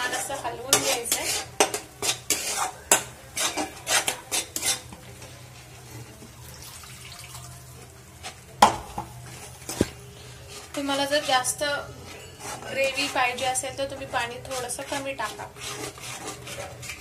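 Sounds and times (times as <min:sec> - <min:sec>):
metal spatula scraping a pan: 0:00.0 - 0:06.1, 0:09.2 - 0:17.0.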